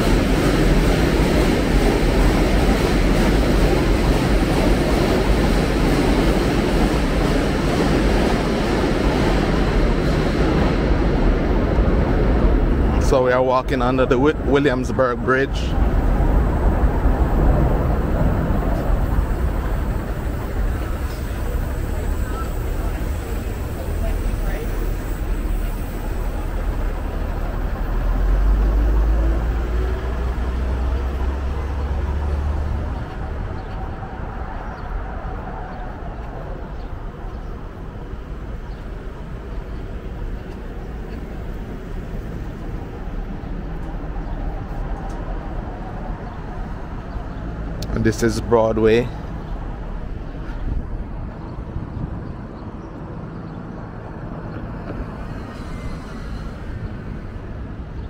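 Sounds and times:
heavy vehicle rumble: 0.0s - 58.0s
low rumble of passing traffic: 0.0s - 58.0s.

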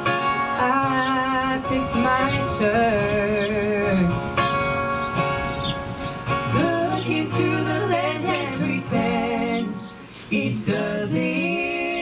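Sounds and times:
acoustic guitar: 0.0s - 12.0s
person singing: 0.6s - 4.2s, 6.5s - 12.0s.

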